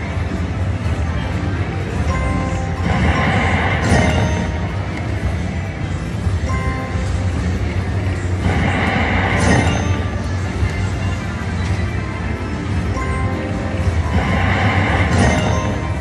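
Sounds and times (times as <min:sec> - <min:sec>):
casino background hum: 0:00.0 - 0:16.0
slot machine music and chimes: 0:00.0 - 0:16.0.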